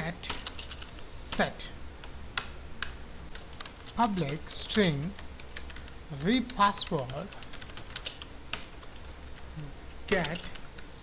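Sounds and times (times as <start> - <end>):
computer keyboard keystrokes: 0.2 - 1.4, 2.0 - 4.4, 5.1 - 9.4, 10.1 - 10.9.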